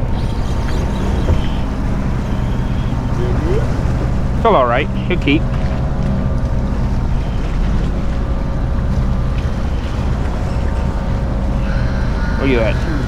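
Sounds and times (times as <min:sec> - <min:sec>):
diesel engines droning: 0:00.0 - 0:13.0.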